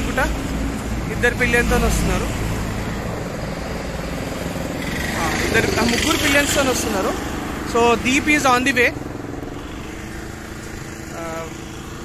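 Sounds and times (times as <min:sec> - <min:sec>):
roadside traffic: 0:00.0 - 0:12.0
vehicle engines running: 0:00.0 - 0:12.0.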